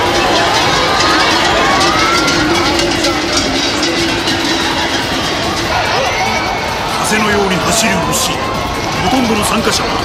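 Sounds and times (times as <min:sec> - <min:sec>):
crowd roar: 0:00.0 - 0:10.0
people shouting: 0:00.0 - 0:10.0.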